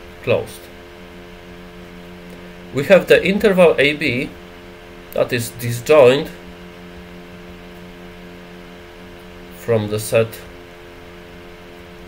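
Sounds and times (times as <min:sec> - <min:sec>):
steady equipment hum: 0:00.0 - 0:12.0.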